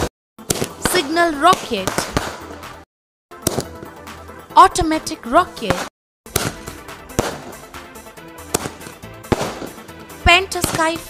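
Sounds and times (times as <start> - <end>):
background music: 0.4 - 11.0
firework shells bursting: 6.3 - 7.8, 8.4 - 10.0.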